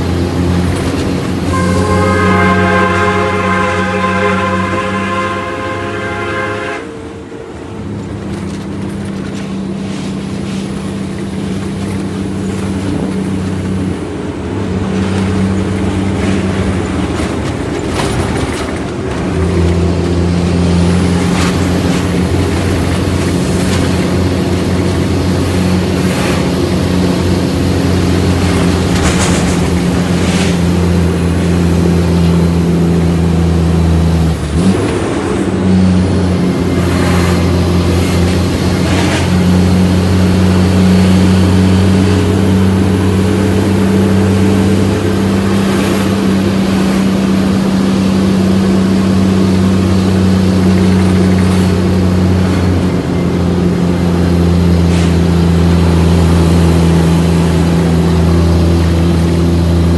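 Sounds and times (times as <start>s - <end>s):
truck diesel engine running: 0.0s - 59.9s.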